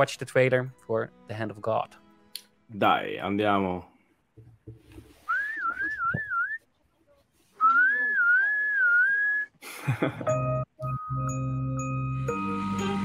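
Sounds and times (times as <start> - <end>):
person whistling: 5.3 - 6.6, 7.6 - 9.6, 10.8 - 11.4.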